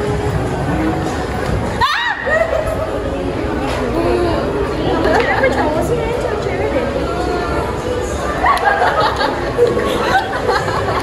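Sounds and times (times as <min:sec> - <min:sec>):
overlapping crowd chatter: 0:00.0 - 0:11.0.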